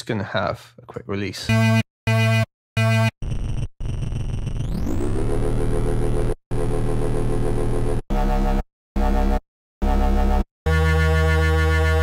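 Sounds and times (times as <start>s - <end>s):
synthesizer bass notes: 1.5s - 3.1s, 4.6s - 12.0s.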